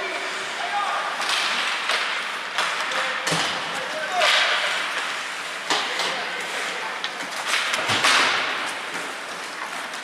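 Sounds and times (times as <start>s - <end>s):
sharp crack echoing in arena: 1.2s - 5.0s, 7.5s - 8.8s.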